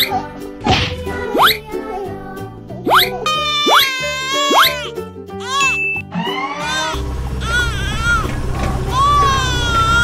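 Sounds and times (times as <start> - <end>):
children's background music: 0.0 - 10.0
bell-like dings: 5.6 - 6.1.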